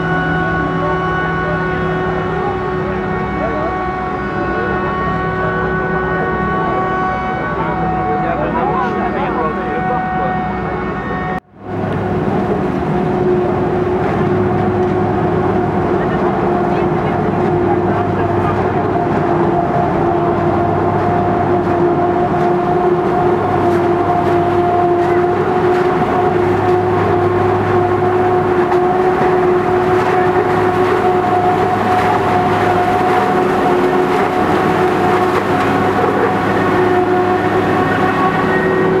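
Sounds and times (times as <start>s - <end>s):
tractor running: 0.0s - 10.8s, 11.6s - 39.0s
forage harvester whining: 0.0s - 39.0s.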